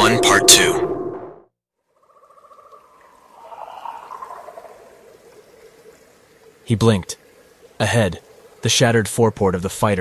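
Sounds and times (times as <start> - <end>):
trickling dripping water: 1.8 - 10.0.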